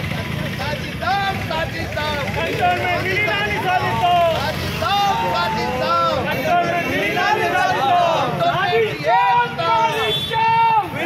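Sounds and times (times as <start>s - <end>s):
low rumble of street noise: 0.0s - 11.0s
men shouting slogans: 0.6s - 11.0s.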